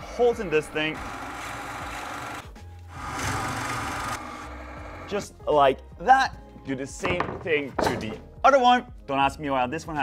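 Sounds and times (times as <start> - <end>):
drill press boring into wood: 0.4 - 5.1.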